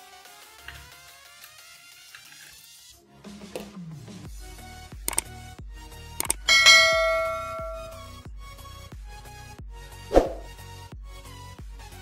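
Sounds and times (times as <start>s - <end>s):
short clicks: 5.1s - 5.3s, 6.2s - 8.0s
bell ding: 6.2s - 8.0s.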